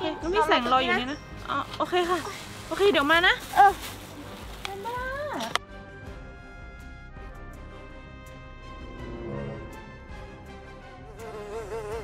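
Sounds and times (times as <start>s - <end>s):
flying insect buzzing: 11.1s - 12.0s.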